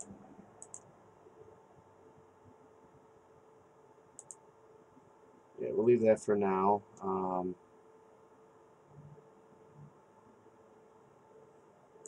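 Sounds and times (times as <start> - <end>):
computer mouse clicks: 0.0 - 0.9, 4.2 - 4.5.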